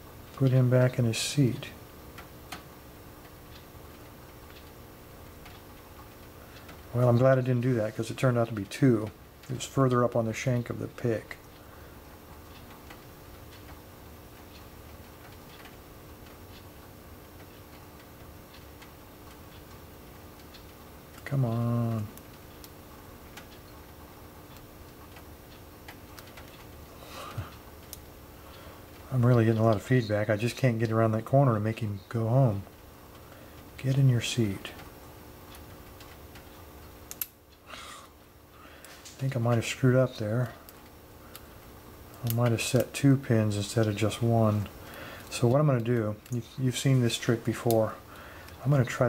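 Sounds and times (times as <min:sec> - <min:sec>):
faint steady hum: 0:00.0 - 0:49.0.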